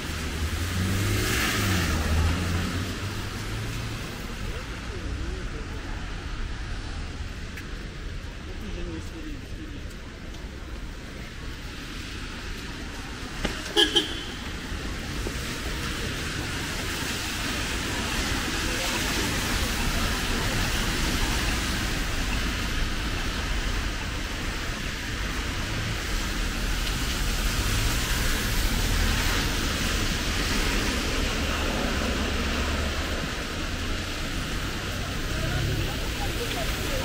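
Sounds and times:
car tyres on wet street: 0.0 - 37.0
rain hissing: 10.5 - 37.0.

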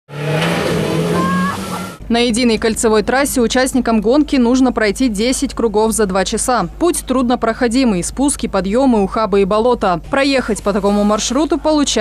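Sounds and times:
off-road vehicle engine under load: 0.1 - 12.0.

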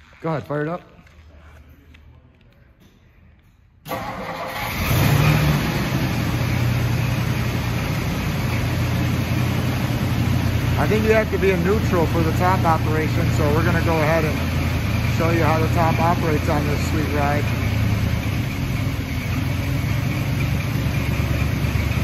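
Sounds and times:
car engine starting and idling: 3.8 - 22.0.

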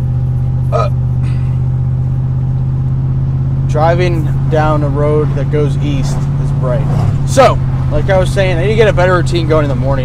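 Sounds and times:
car engine and road hum: 0.0 - 10.0
person grunting: 0.7 - 1.6.

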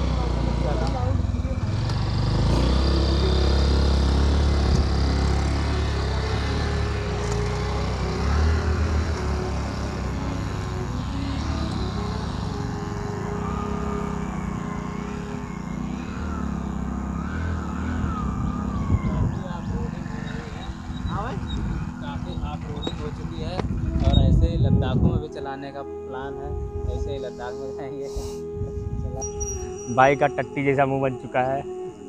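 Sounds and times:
motorcycle engine revving: 0.0 - 30.6.

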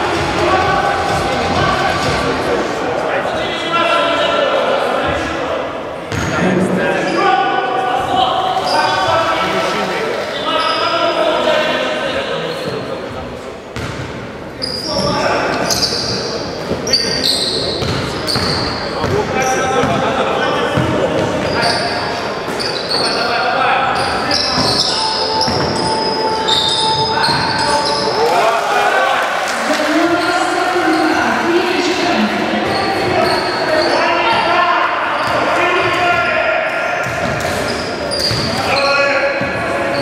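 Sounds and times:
sneakers squeaking: 6.1 - 7.2, 10.2 - 11.2, 13.8 - 20.0, 20.7 - 28.3, 29.8 - 40.0.

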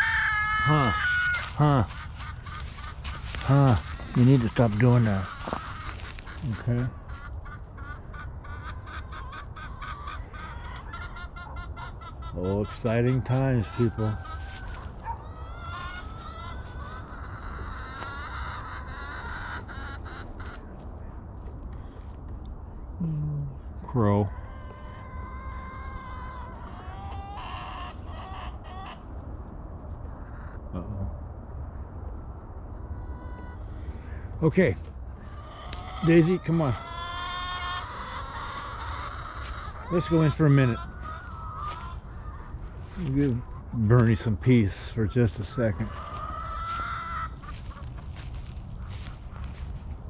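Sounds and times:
birds calling: 0.0 - 50.0.

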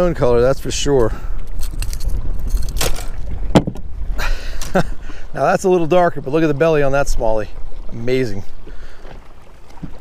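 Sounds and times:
wind buffeting microphone: 0.0 - 10.0
handling gear clicks and rattles: 1.5 - 3.2.

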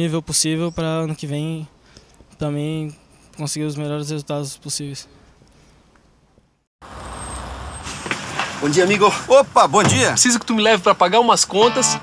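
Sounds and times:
road traffic rumble: 6.8 - 12.0.

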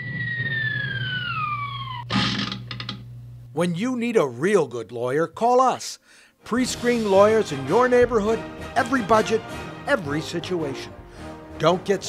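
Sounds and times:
comic falling whistle: 0.0 - 2.1
electric fan humming: 2.0 - 4.2.

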